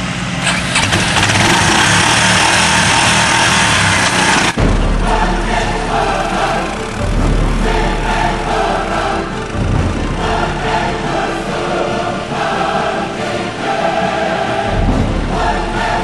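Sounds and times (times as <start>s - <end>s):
engine running loud: 0.0s - 16.0s
music with heavy bass: 4.6s - 13.6s, 14.3s - 16.0s.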